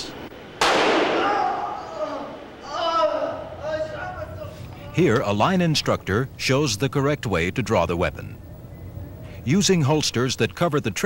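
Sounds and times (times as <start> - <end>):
handgun shot: 0.6 - 1.4
man crying out: 1.2 - 4.4.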